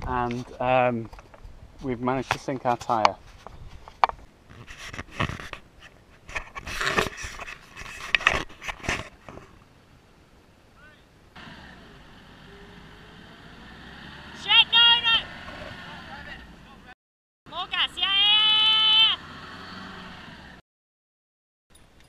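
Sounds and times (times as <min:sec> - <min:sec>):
car engine revving: 0:11.4 - 0:16.7, 0:18.7 - 0:20.6
voices: 0:14.3 - 0:19.3.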